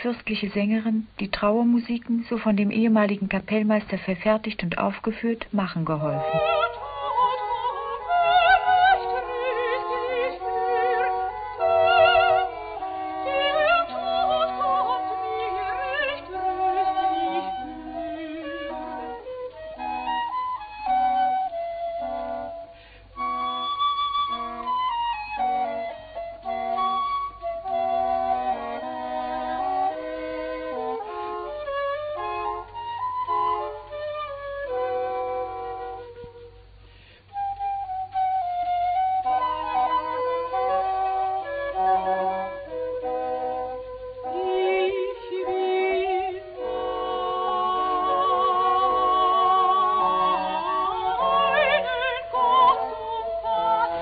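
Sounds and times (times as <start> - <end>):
oboe: 6.0 - 54.0
wooden flute: 6.0 - 54.0.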